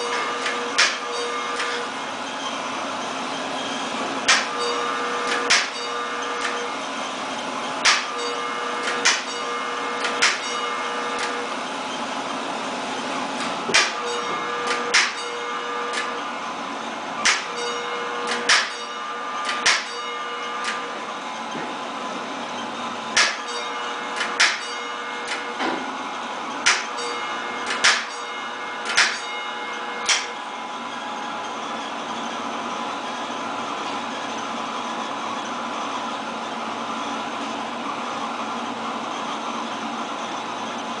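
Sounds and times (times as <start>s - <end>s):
electric fire alarm bell strokes: 0.0s - 35.9s.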